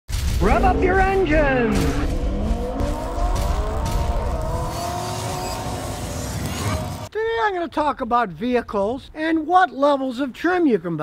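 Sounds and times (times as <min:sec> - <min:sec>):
car engine revving up: 0:00.6 - 0:07.1.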